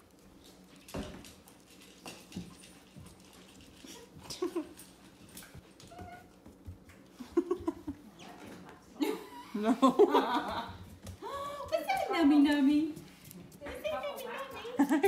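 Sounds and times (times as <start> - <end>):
puppy eating from a bowl: 0.0 - 7.2.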